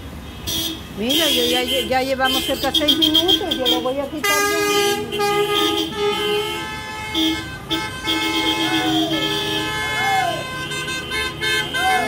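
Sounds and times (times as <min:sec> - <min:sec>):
car horns honking: 0:00.1 - 0:12.0.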